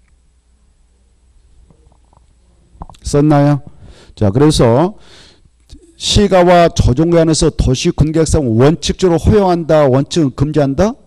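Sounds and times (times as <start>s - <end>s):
microphone system hum: 0.0s - 4.8s
person speaking: 2.6s - 5.0s, 5.7s - 11.0s.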